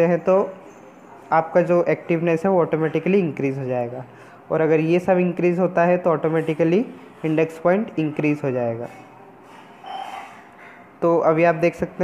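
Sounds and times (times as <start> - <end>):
soft intake of breath: 4.1 - 4.5.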